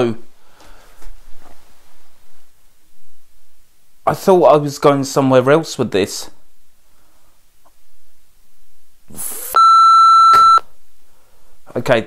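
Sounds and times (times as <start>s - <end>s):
censor bleep tone: 9.5s - 10.7s.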